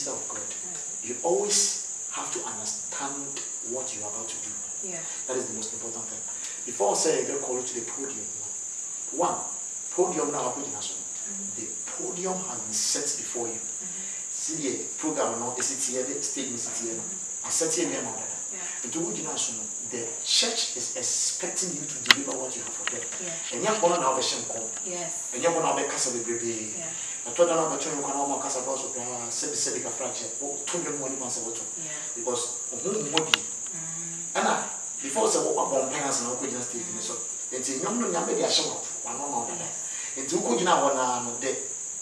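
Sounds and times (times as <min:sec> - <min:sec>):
man talking: 0:00.0 - 0:04.6, 0:05.2 - 0:13.6, 0:14.4 - 0:33.6, 0:34.3 - 0:41.6
man's indistinct voice: 0:00.0 - 0:04.6, 0:05.3 - 0:08.5, 0:09.1 - 0:13.6, 0:14.4 - 0:24.8, 0:25.4 - 0:33.6, 0:34.3 - 0:41.6.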